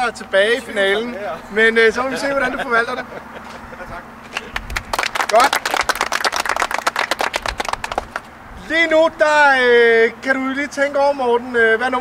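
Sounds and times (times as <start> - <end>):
people applauding: 4.3 - 8.3.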